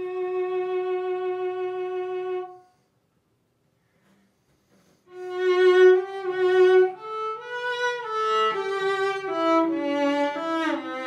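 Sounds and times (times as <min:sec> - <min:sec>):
bowed cello slow phrase: 0:05.1 - 0:11.0.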